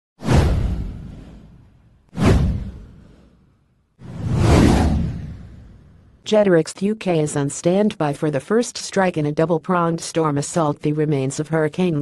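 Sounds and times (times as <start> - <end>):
whoosh sound effects: 2.2 - 3.4, 4.0 - 6.0.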